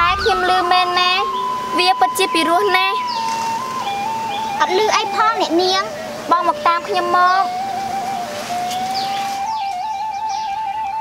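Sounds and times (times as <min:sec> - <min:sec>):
birds chirping: 0:00.0 - 0:11.0
flute melody: 0:00.0 - 0:11.0.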